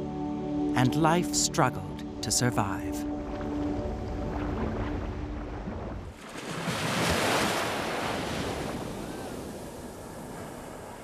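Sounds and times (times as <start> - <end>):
ocean wave rushing in: 3.2 - 11.0.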